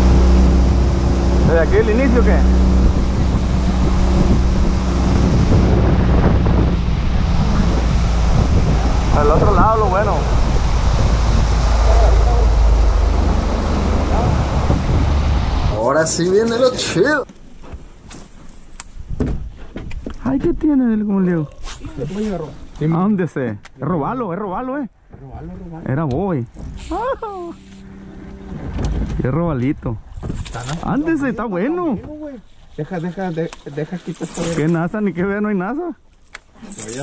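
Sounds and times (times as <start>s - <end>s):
faint steady hum: 0.0s - 15.7s
outboard motor droning: 0.0s - 15.8s, 26.6s - 29.4s
wind rumbling on microphone: 0.0s - 16.8s, 25.2s - 31.4s
water rushing along hull: 0.0s - 17.2s, 26.6s - 29.4s.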